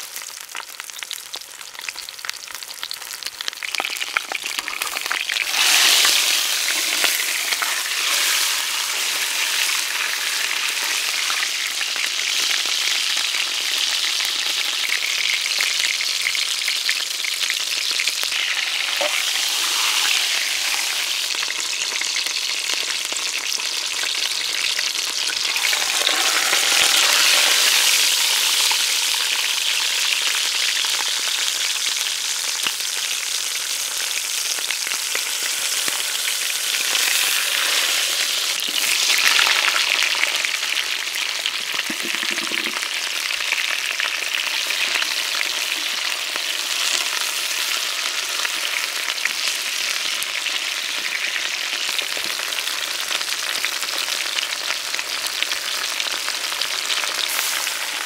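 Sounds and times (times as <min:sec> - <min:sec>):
meat sizzling in a pot: 0:00.0 - 0:58.0
wooden spatula scraping meat: 0:05.4 - 0:09.8, 0:18.3 - 0:21.4, 0:25.4 - 0:28.8.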